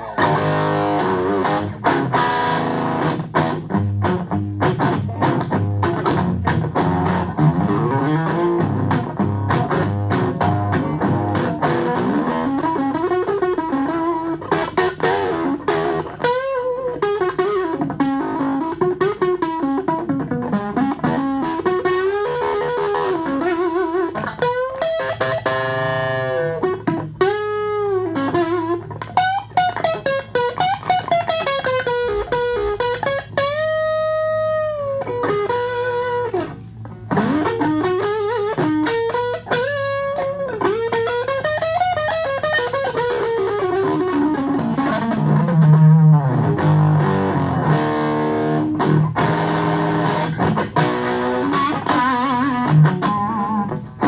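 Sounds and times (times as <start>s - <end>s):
electric guitar bent notes: 0.0s - 54.0s
electric guitar chords: 0.0s - 54.0s.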